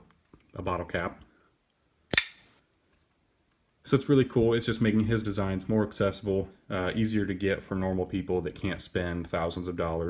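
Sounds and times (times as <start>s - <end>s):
knife blade snapping open: 2.1s - 2.4s.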